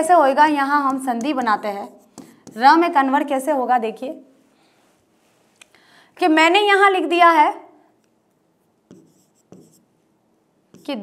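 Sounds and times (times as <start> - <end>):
chalk writing on blackboard: 1.2 - 2.8, 8.9 - 9.9, 10.7 - 11.0.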